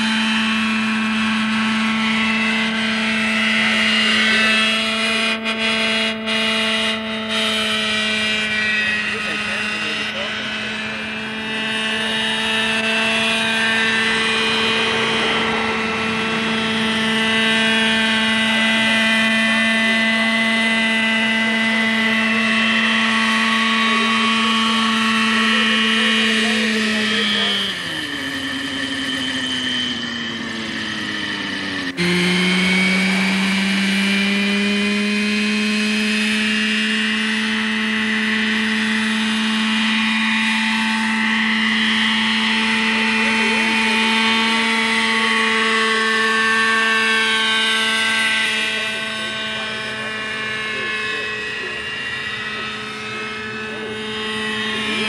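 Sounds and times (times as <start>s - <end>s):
model helicopter engine and rotor: 0.0s - 55.0s.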